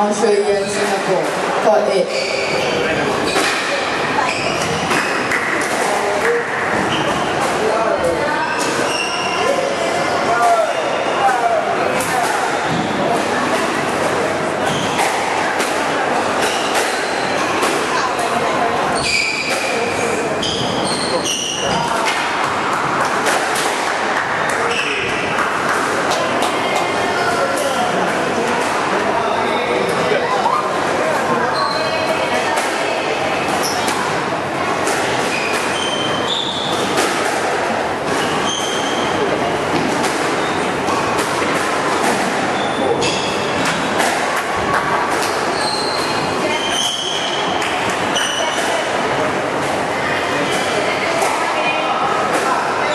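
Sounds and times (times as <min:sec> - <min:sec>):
background chatter of voices: 0:00.0 - 0:52.9
shoes squeaking on wooden floor: 0:02.0 - 0:03.6, 0:45.5 - 0:47.4.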